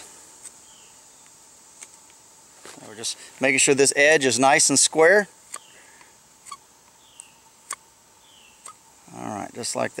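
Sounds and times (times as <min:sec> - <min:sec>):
high insect hum: 0:00.0 - 0:10.0.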